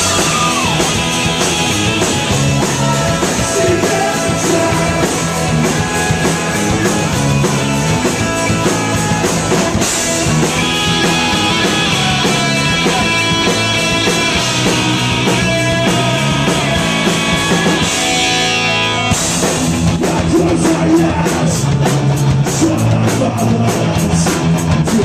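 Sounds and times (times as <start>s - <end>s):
live rock band playing: 0.0s - 25.0s.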